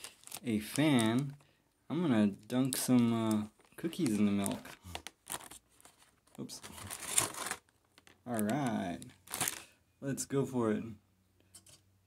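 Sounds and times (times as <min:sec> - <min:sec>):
plastic wrapper crinkling: 0:00.0 - 0:01.5, 0:02.1 - 0:09.7.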